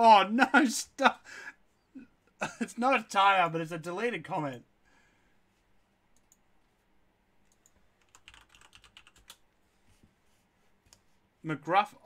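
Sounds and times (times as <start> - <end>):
faint keyboard typing clicks: 6.1 - 6.7, 7.4 - 9.5.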